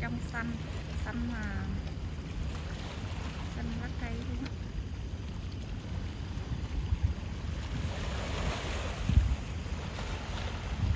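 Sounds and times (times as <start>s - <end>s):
sea water washing: 0.0s - 10.9s
wind buffeting microphone: 0.0s - 10.9s.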